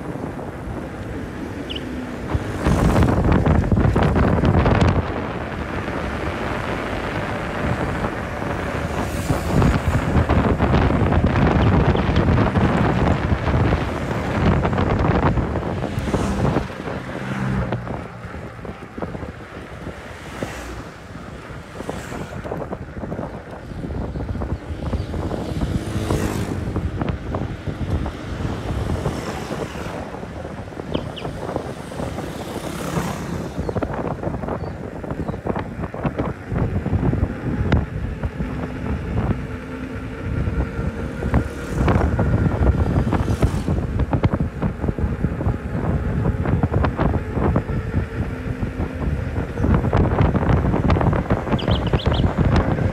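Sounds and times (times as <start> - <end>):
rushing road noise: 0.0 - 52.9
wind buffeting microphone: 0.0 - 52.9.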